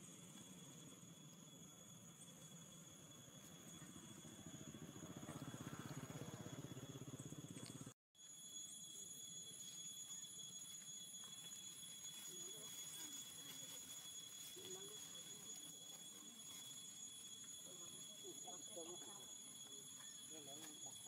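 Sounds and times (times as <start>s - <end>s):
high insect drone: 0.0s - 21.0s.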